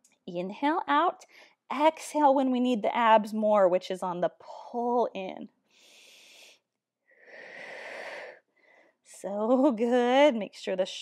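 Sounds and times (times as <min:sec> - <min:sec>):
woman breathing: 0:05.7 - 0:09.1.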